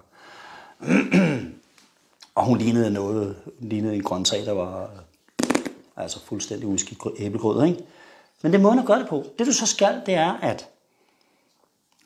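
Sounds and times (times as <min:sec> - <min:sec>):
man breathing in: 0:00.0 - 0:00.8, 0:07.9 - 0:08.4
man clearing his throat: 0:00.8 - 0:01.6.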